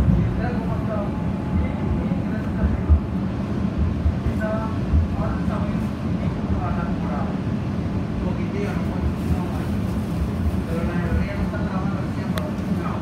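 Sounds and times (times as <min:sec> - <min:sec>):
train rumbling: 0:00.0 - 0:13.0
low thumps: 0:01.2 - 0:04.3.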